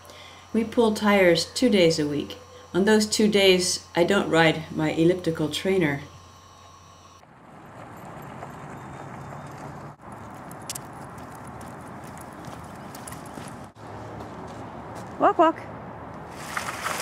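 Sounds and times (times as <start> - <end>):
bicycle tires scraping over ground: 7.2 - 14.6, 16.3 - 17.0
footsteps: 7.6 - 15.2.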